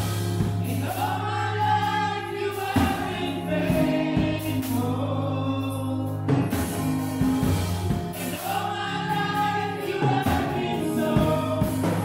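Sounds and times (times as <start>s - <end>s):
women singing gospel: 0.0s - 6.6s, 8.0s - 12.0s
bass accompaniment: 0.0s - 12.0s.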